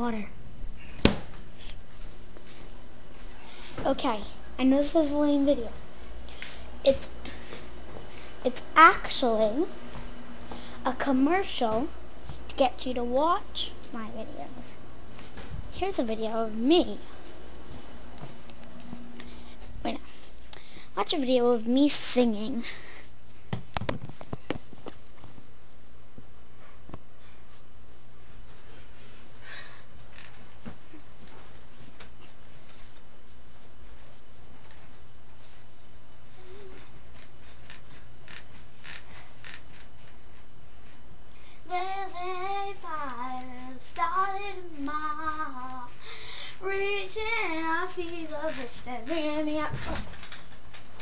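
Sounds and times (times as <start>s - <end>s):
girl singing: 8.4s - 9.7s, 10.8s - 12.0s, 12.6s - 14.8s, 15.7s - 17.1s, 41.6s - 46.0s, 46.6s - 50.1s.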